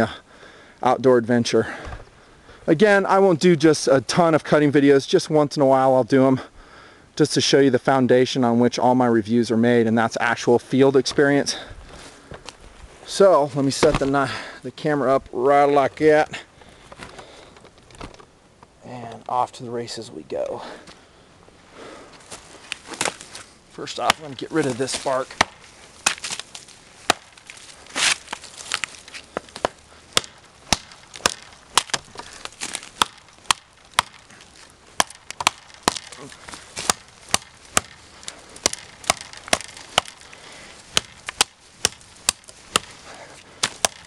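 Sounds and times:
footsteps through dry grass: 11.0s - 17.5s, 20.8s - 44.0s
twigs snapping: 22.2s - 44.0s
knife chopping into wood: 24.0s - 26.4s, 28.0s - 44.0s.

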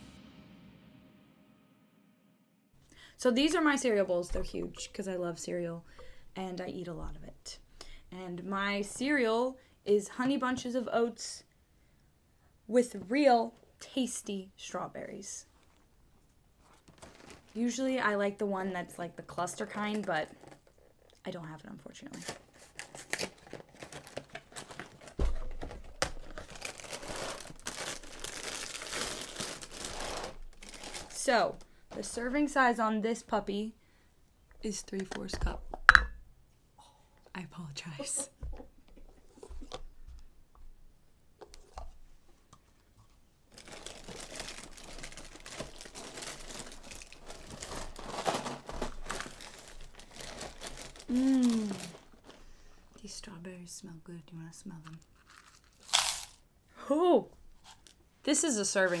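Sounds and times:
plastic bag crinkling: 16.7s - 17.7s, 22.2s - 32.0s, 43.5s - 52.6s, 55.1s - 56.4s.

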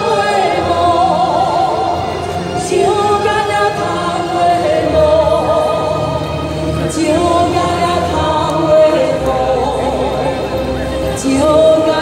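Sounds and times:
woman singing into microphone: 0.0s - 6.2s, 6.8s - 10.4s, 11.2s - 12.0s.

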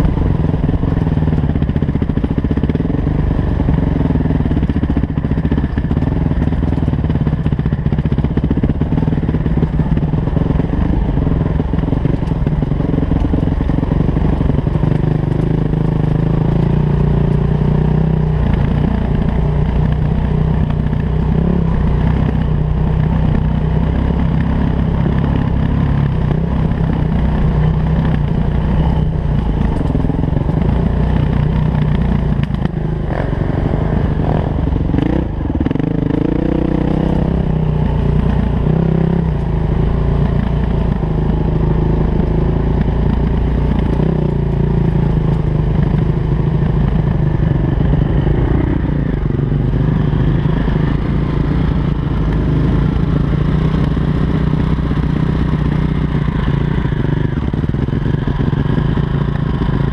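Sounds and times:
dirt bike engine running: 0.0s - 59.9s.

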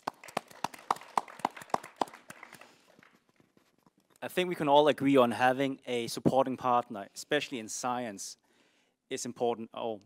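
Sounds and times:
audience applauding: 0.0s - 3.3s.

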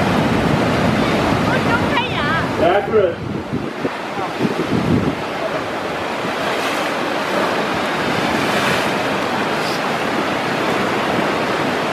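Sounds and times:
ocean surf breaking: 0.0s - 11.9s.

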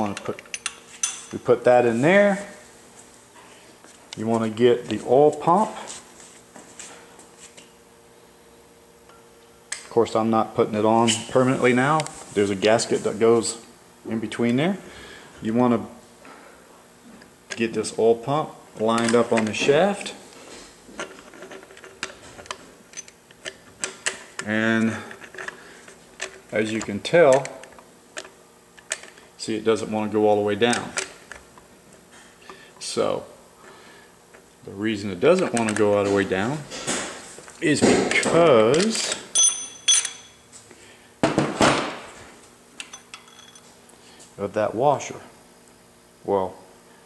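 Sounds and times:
metal-on-metal clinks: 39.3s - 40.4s, 42.8s - 43.7s.

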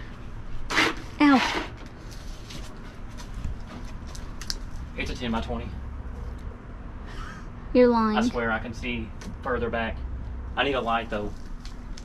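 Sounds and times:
faint clicks and rustles: 1.8s - 5.1s, 11.2s - 12.0s
person exclaiming and speaking: 7.8s - 8.5s.

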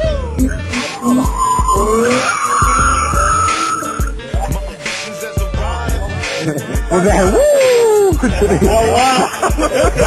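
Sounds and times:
music with thumping beat: 0.0s - 10.0s
car tyres squealing: 0.7s - 4.2s.

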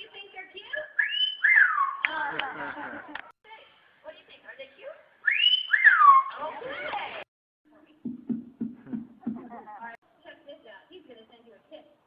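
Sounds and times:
bird wolf whistle: 0.9s - 2.0s, 5.2s - 6.4s.

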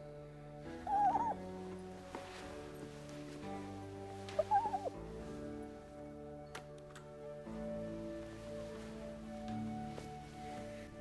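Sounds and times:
soft background music: 0.0s - 11.0s
fox calling: 0.7s - 1.6s, 4.3s - 5.0s.

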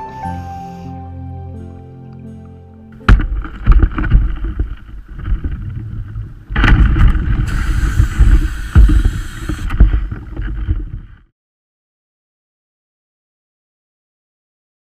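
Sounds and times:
water sloshing and splashing: 3.1s - 8.4s.

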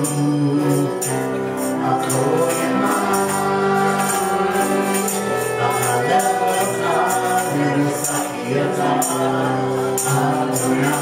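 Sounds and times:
guitars: 0.0s - 11.0s
tambourine jingling: 0.0s - 11.0s
voices singing: 0.0s - 11.0s.

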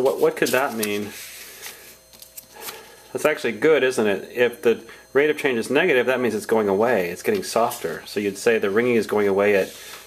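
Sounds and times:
paper sliding across a desk: 0.4s - 1.8s, 9.5s - 10.0s.

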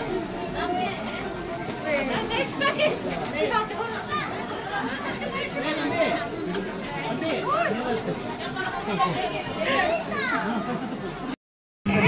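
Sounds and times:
chatter of voices: 0.0s - 12.0s
children's voices: 3.7s - 6.6s, 8.5s - 11.3s.

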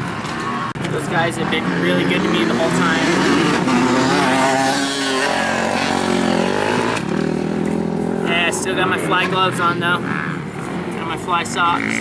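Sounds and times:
dirt bike engines revving: 0.0s - 12.0s.

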